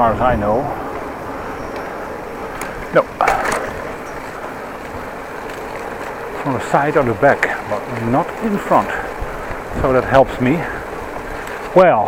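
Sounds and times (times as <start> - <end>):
bicycle tyres rolling on pavement: 0.0 - 12.0
wind rushing on microphone: 0.0 - 12.0.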